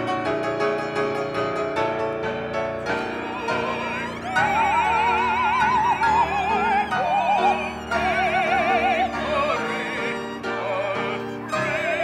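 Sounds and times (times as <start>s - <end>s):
piano: 0.0s - 12.0s
violin: 0.0s - 12.0s
soprano singing operatic note: 3.0s - 12.0s.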